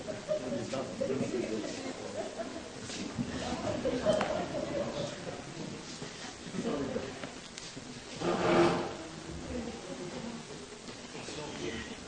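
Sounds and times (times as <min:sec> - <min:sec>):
brief scrape: 0:08.2 - 0:09.0.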